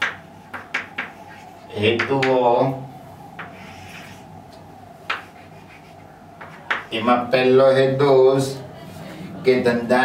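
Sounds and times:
chalk scraping on blackboard: 0:03.4 - 0:04.3, 0:05.1 - 0:06.8.

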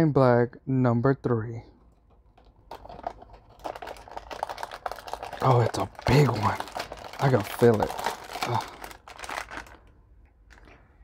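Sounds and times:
plastic bag crinkling: 0:02.2 - 0:10.8.

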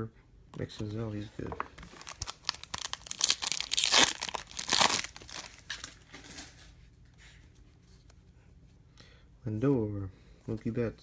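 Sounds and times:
cards rustling: 0:00.6 - 0:06.6
foil wrapper tearing and crinkling: 0:01.8 - 0:06.0.

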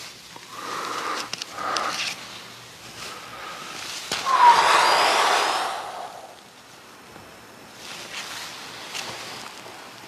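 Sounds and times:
loud rushing noise: 0:04.2 - 0:06.5.

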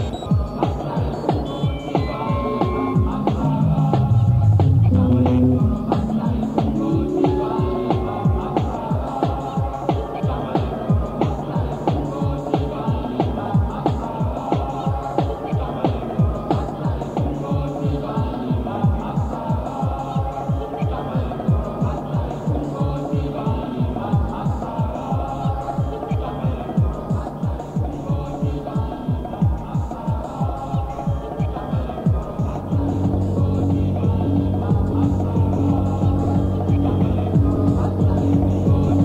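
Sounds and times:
repeating synth loops: 0:00.0 - 0:11.6
fast kick drum: 0:00.0 - 0:39.0.

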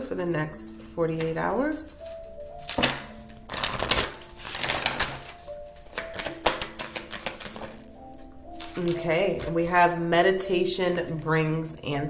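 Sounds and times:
soft background music: 0:00.0 - 0:12.0
cards being shuffled: 0:02.1 - 0:08.0.

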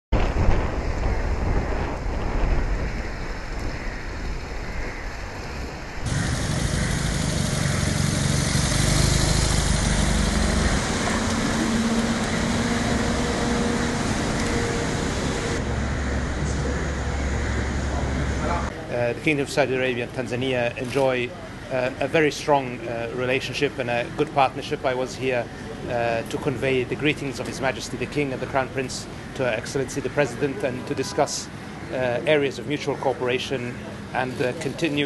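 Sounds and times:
cars driving past: 0:06.0 - 0:18.9.

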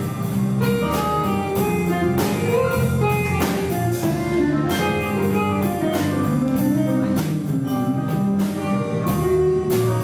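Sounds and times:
drum kit beat: 0:00.0 - 0:10.0
electric bass line: 0:00.0 - 0:10.0
electric guitar playing notes: 0:00.0 - 0:10.0.

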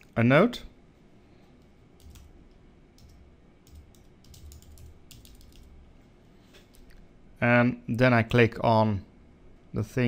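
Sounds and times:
typing on computer keyboard: 0:02.0 - 0:02.3, 0:03.0 - 0:05.7.

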